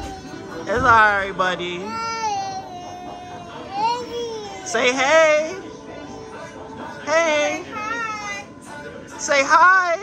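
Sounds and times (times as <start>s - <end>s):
toddler crying: 1.8s - 4.7s.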